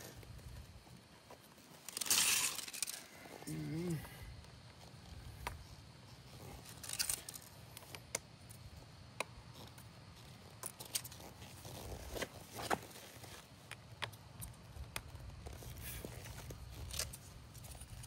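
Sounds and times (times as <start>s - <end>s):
plastic propellers clicking and scraping: 1.8s - 3.1s.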